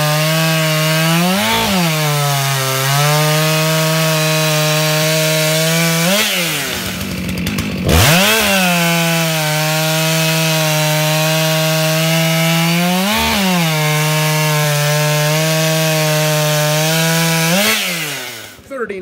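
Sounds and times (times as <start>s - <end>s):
chainsaw cutting log: 0.0s - 18.7s.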